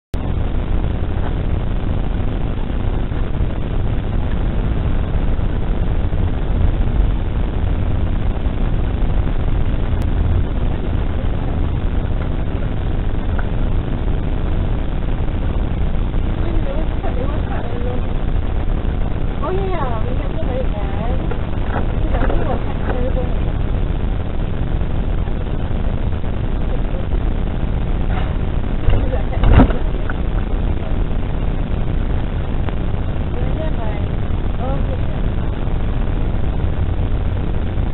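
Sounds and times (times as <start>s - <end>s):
car road and engine noise: 0.1s - 37.9s.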